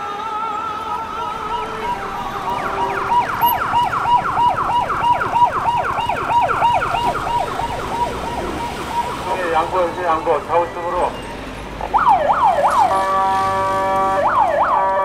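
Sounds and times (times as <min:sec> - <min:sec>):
emergency vehicle siren: 0:00.0 - 0:15.0.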